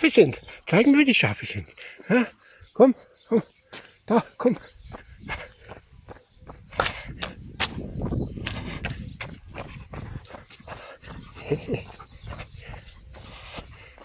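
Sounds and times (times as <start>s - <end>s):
footsteps on asphalt: 4.5s - 14.0s.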